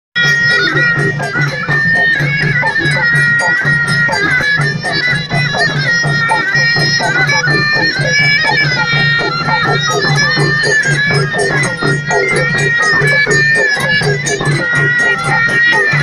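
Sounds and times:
frame drums beating: 0.2s - 16.0s
reedy wind instrument melody: 0.2s - 16.0s.

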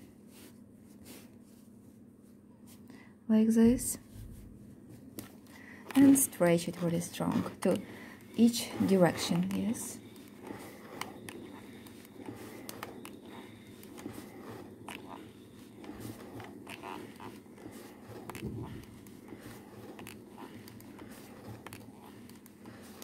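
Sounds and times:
iron scraping over lace: 5.2s - 23.0s.

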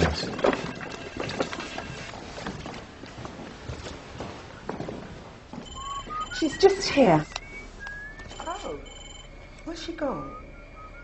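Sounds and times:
footsteps on hard floor: 0.4s - 6.8s
faint high steady tone: 5.6s - 11.0s.

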